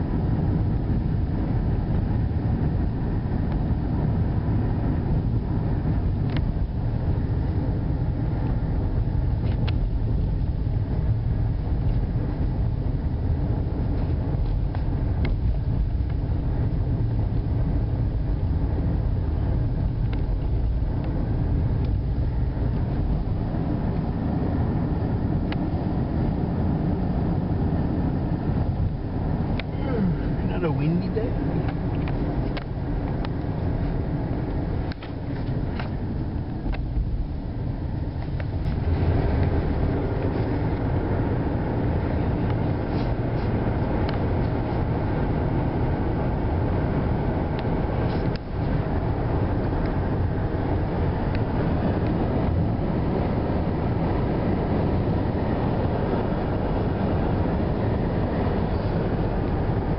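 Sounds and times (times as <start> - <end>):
car road and engine rumble: 0.0 - 59.9
short wavering voice-like sound: 29.7 - 30.5.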